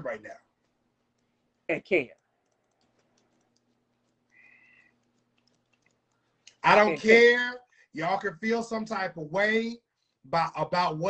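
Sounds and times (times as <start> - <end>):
man speaking: 0.0 - 0.4, 6.5 - 11.0
faint low hum: 0.0 - 11.0.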